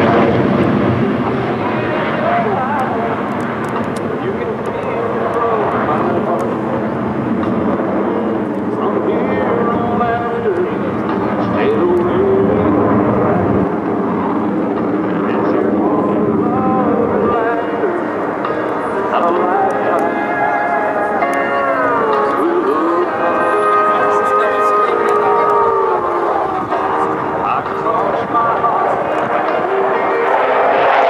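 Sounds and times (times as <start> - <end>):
jet roar overhead: 0.0 - 31.0
song over loudspeakers: 0.0 - 31.0.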